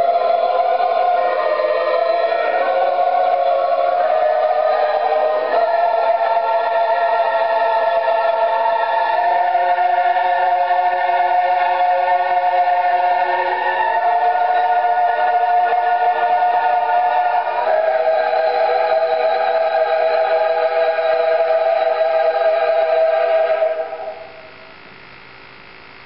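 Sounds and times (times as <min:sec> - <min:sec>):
choir singing long notes: 0:00.0 - 0:24.6.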